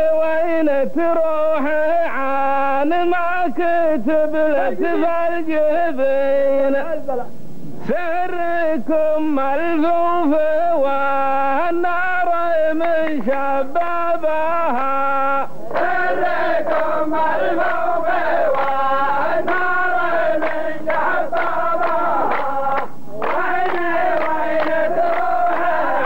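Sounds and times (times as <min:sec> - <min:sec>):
men chanting together: 0:09.7 - 0:26.0.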